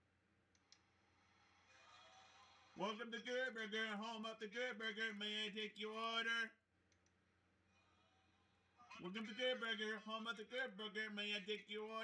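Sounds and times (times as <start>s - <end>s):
small clicks: 6.9s - 7.2s.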